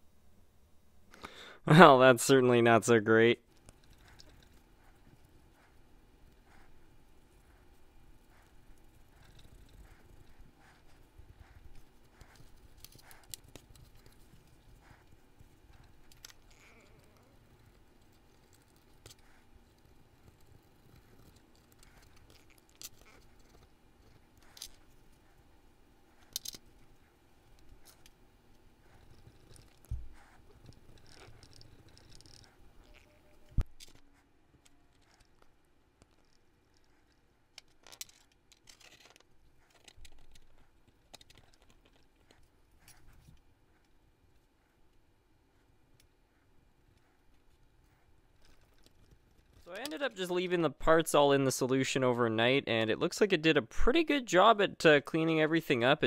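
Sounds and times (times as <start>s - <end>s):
light clicks of small parts: 26.2s - 26.8s, 30.6s - 44.0s.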